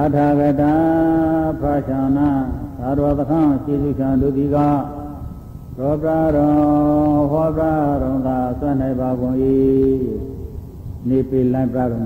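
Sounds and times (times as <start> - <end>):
man chanting with held notes: 0.0 - 12.0.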